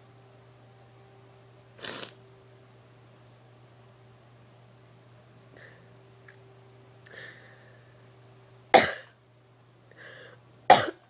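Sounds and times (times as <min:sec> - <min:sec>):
low steady hum: 0:00.0 - 0:11.0
person coughing: 0:08.8 - 0:09.1, 0:10.7 - 0:11.0.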